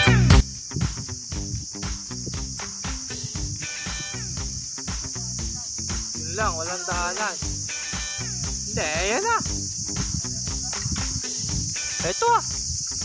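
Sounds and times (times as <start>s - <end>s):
insects droning: 0.0s - 13.0s
music with regular beat: 0.0s - 13.0s.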